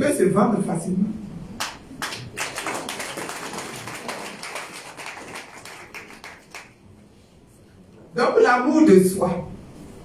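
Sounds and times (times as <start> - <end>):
audience clapping: 1.6 - 6.8.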